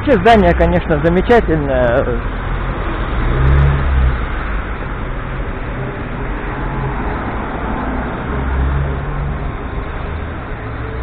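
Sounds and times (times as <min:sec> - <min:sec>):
low traffic rumble: 0:00.0 - 0:11.0
road noise from passing cars: 0:00.0 - 0:11.0.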